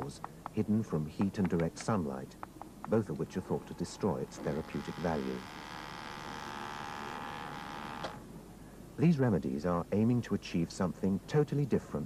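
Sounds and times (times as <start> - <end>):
high electric buzz: 3.6 - 8.3.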